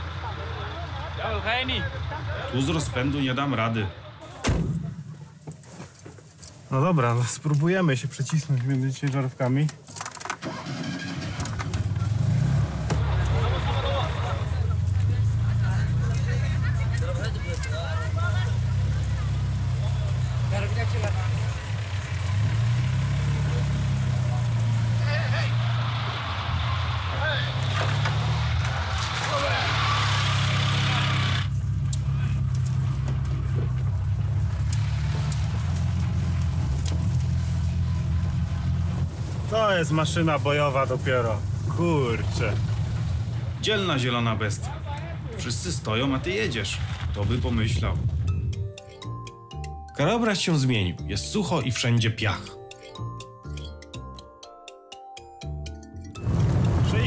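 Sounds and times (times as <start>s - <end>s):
small car engine revving: 10.4s - 43.7s, 56.2s - 56.9s.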